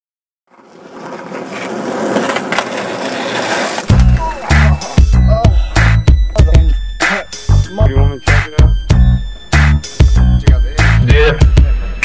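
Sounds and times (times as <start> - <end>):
skateboard clacks: 0.5 - 4.7
skateboard wheels rolling on asphalt: 0.5 - 5.0.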